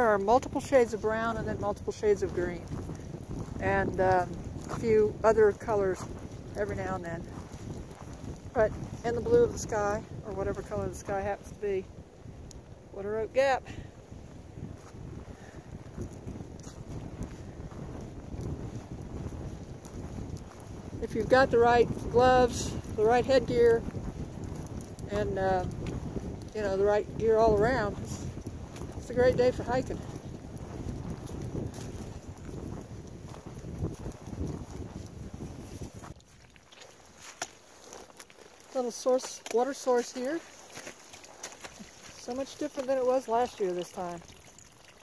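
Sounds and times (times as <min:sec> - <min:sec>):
wind blowing across microphone: 0:00.0 - 0:45.0
footsteps crunching dry leaves: 0:02.2 - 0:09.0, 0:28.0 - 0:45.0.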